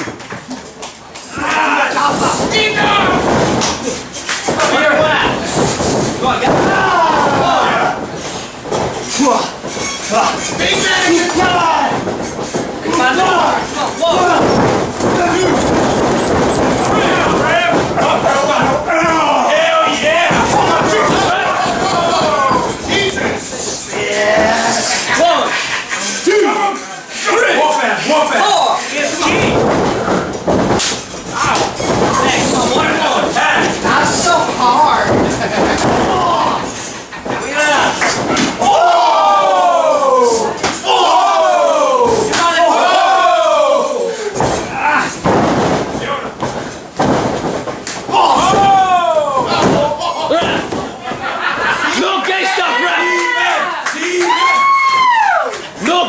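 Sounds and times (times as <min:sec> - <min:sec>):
sharp impacts: 0:01.3 - 0:25.3, 0:28.9 - 0:51.2
crowd and wrestlers shouting: 0:01.3 - 0:29.5, 0:31.0 - 0:45.3, 0:48.0 - 0:56.0
body slammed onto ring mat: 0:02.2 - 0:09.8, 0:10.5 - 0:18.8, 0:44.4 - 0:51.0.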